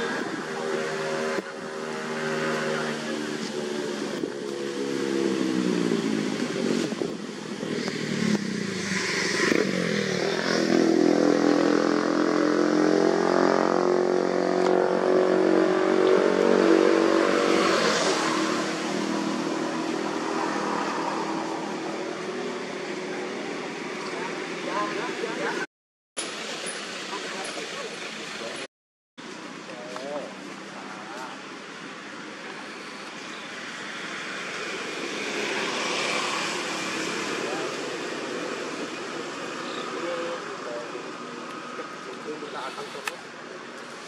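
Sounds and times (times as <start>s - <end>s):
motorcycle engine passing by: 0.0s - 23.3s.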